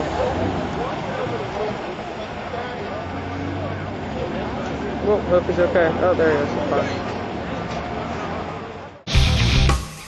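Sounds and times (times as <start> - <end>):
crowd talking faintly: 0.0 - 9.6
vehicle engine droning: 0.0 - 9.7.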